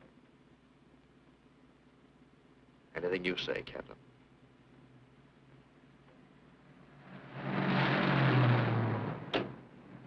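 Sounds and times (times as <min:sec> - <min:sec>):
car driving past: 0:06.8 - 0:10.0.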